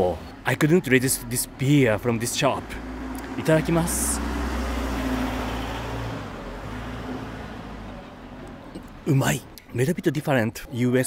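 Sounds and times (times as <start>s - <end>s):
motor vehicle passing: 0.0s - 9.7s.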